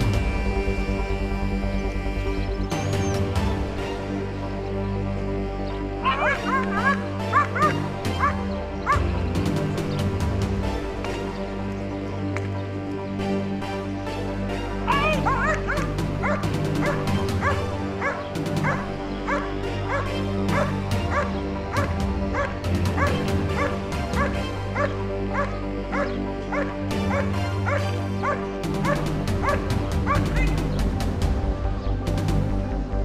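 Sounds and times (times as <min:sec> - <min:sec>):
dog barking: 0:06.0 - 0:08.4, 0:14.9 - 0:30.3.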